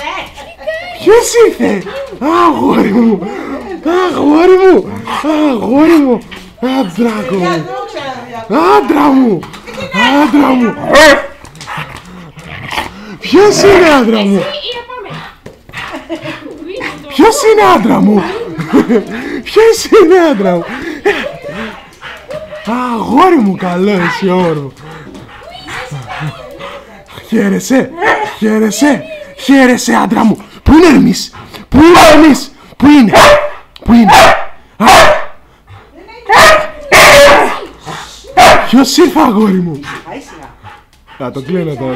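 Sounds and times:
dog barking loudly: 9.9s - 11.4s, 13.3s - 14.7s, 17.1s - 19.3s, 23.6s - 24.6s, 27.9s - 28.4s, 31.8s - 32.4s, 33.0s - 35.4s, 36.3s - 37.7s, 38.4s - 39.3s.

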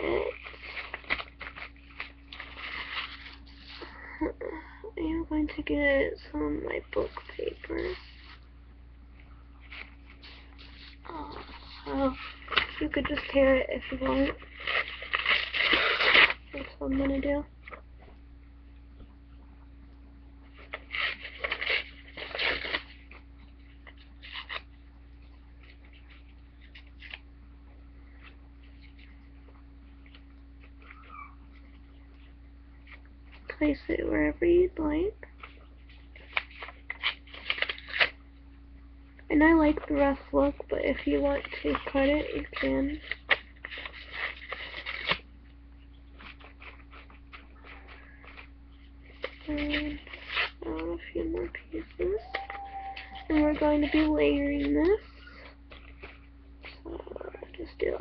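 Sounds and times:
paper rustling and crinkling: 0.0s - 4.1s, 6.8s - 8.5s, 9.2s - 17.9s, 20.5s - 27.3s, 28.1s - 33.8s, 35.2s - 38.2s, 39.5s - 58.0s
faint steady hum: 0.0s - 58.0s
paper being torn by hand: 10.2s - 16.7s, 24.2s - 24.7s, 36.2s - 38.2s, 41.4s - 45.2s.

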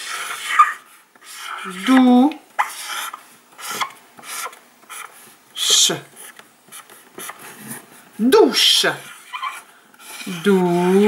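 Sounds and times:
marker on whiteboard: 0.0s - 11.0s.

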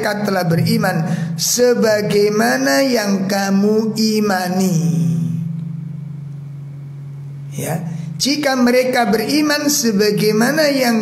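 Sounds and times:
man speaking: 7.5s - 11.0s.

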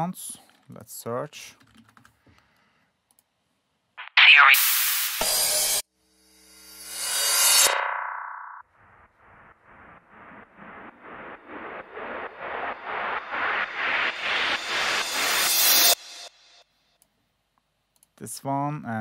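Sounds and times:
pulsing reverse effect loop: 6.5s - 16.6s
electronic noise burst: 6.7s - 16.2s
reverse whoosh: 7.0s - 16.6s.

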